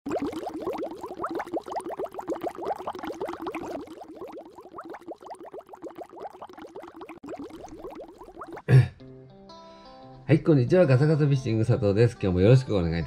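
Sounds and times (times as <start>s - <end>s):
bubbling water bloops: 0.0s - 8.8s.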